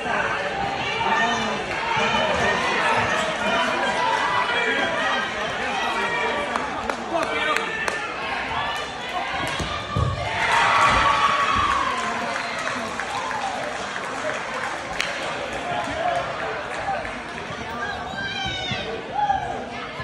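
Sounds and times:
crowd chatter echoing: 0:00.0 - 0:20.0.

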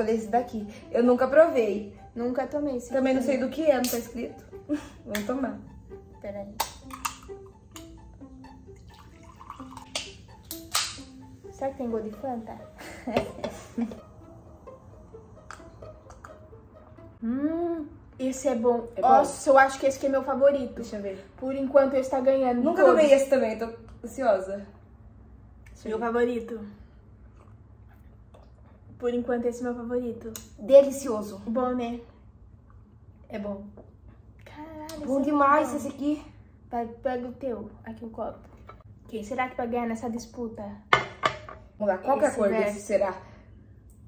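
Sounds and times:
soft melodic background music: 0:00.0 - 0:24.9
fizzy drink pouring into glass: 0:08.8 - 0:10.0
sips and swallows: 0:27.3 - 0:28.8.

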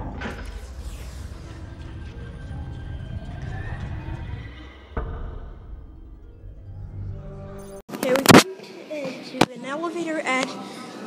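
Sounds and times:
low rumbling film score: 0:00.0 - 0:07.8.

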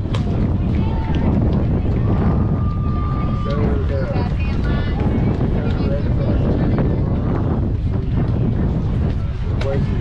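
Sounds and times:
distant voices: 0:00.0 - 0:10.0
wind buffeting microphone: 0:00.0 - 0:10.0.

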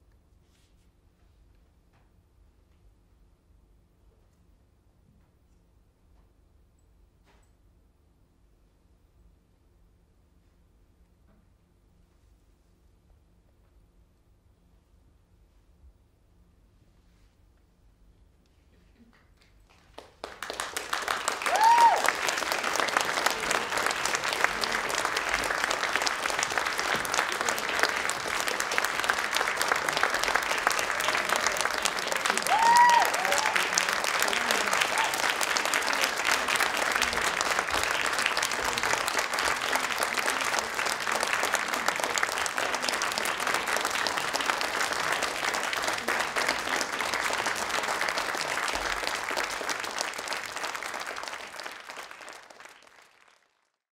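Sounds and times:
audience applauding: 0:19.4 - 0:53.8.

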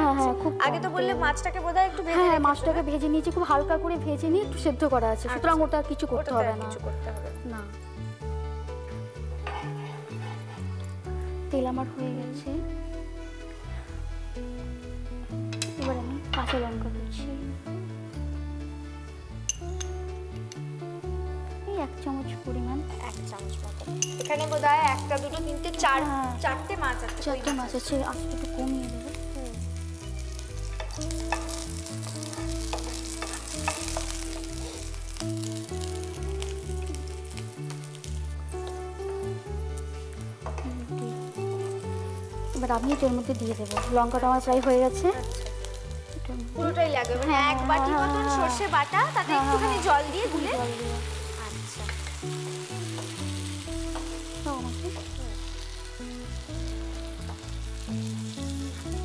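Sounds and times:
chillies sizzling in hot oil: 0:00.0 - 0:59.0
soft background music: 0:00.0 - 0:59.0
spatula stirring in pan: 0:09.4 - 0:11.0, 0:30.2 - 0:35.6.

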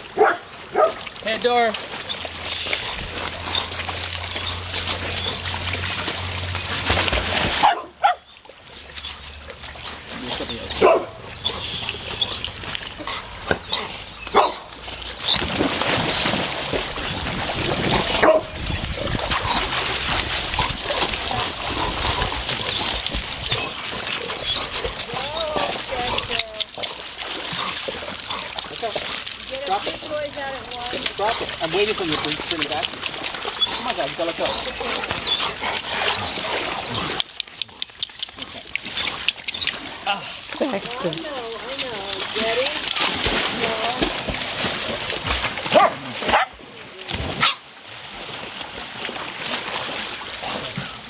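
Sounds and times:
dogs splashing in water: 0:00.0 - 0:51.0
water sloshing: 0:00.0 - 0:51.0
dogs barking: 0:00.1 - 0:01.1, 0:07.6 - 0:08.3, 0:10.5 - 0:12.4, 0:13.0 - 0:14.7, 0:18.0 - 0:18.6, 0:45.7 - 0:46.6, 0:47.4 - 0:47.6.

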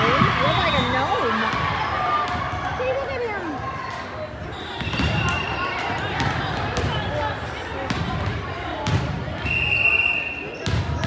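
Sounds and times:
echoing chatter of voices: 0:00.0 - 0:11.0.

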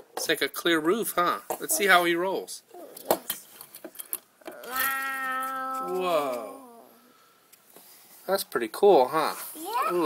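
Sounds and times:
person saying whoa: 0:04.6 - 0:07.0.

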